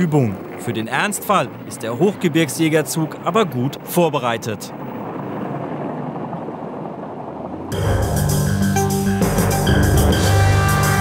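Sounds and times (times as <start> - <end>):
tracked vehicle engine and tracks: 0.0 - 11.0.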